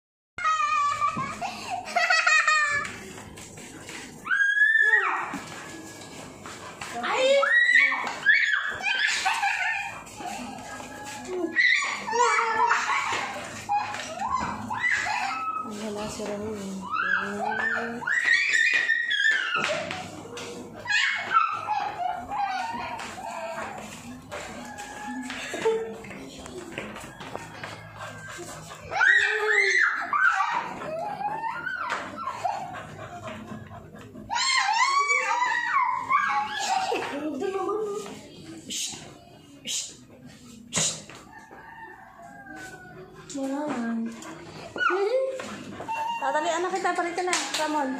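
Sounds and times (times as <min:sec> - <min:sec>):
puppy whining: 0:04.2 - 0:15.8, 0:16.8 - 0:25.7, 0:27.4 - 0:37.3, 0:44.1 - 0:46.7
dog howling: 0:16.8 - 0:20.1, 0:20.8 - 0:23.9, 0:27.6 - 0:36.8.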